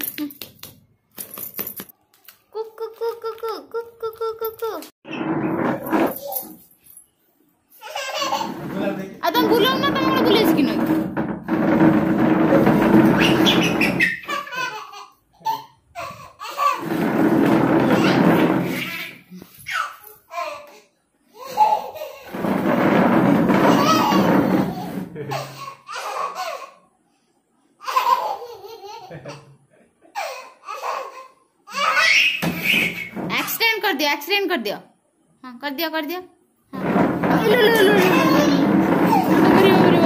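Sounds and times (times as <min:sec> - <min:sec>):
toddler laughing: 0:07.8 - 0:08.6, 0:13.3 - 0:16.9, 0:23.8 - 0:26.8, 0:27.8 - 0:32.4, 0:37.3 - 0:39.9.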